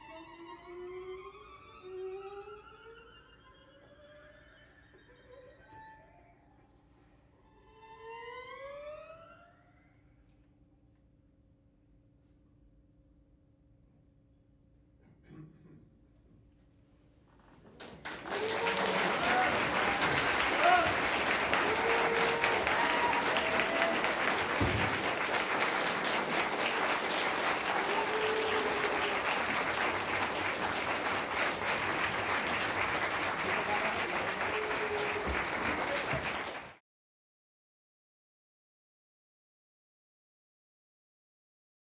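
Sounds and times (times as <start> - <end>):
audience applauding: 17.7 - 36.8.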